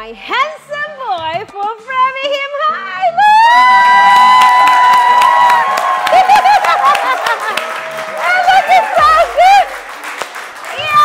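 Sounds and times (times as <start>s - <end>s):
people cheering: 3.3s - 11.0s
hand clapping: 4.2s - 11.0s.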